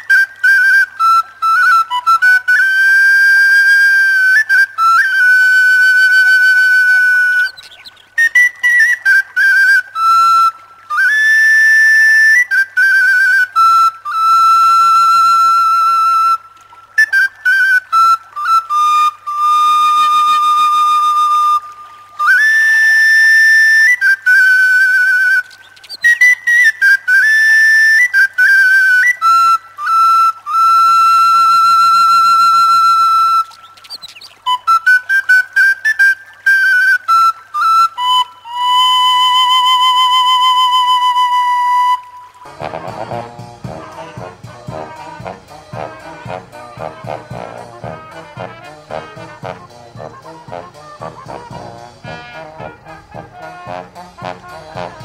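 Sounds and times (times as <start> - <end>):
flute-like solo melody: 0.0 - 55.0.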